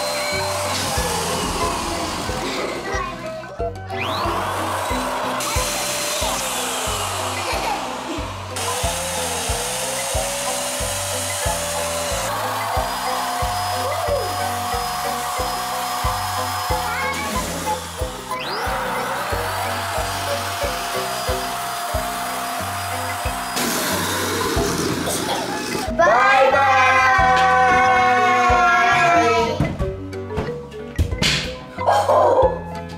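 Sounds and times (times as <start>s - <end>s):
electric balloon pump running: 0.0s - 26.0s
background music with steady beat: 0.0s - 26.2s, 27.0s - 32.9s.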